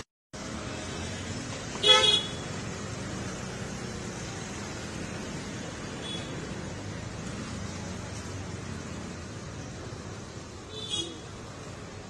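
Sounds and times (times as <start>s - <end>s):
street traffic hum: 0.0s - 12.0s
vehicle horn toot: 1.8s - 2.4s, 10.7s - 11.2s.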